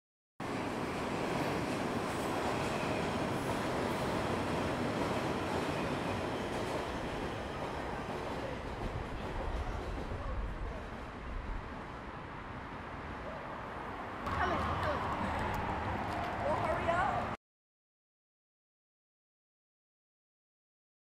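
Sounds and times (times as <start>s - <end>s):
train wheels on rails: 0.4s - 11.2s.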